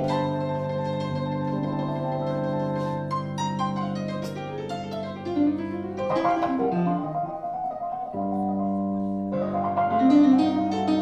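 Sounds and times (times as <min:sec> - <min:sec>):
piano and keyboards playing: 0:00.0 - 0:11.0.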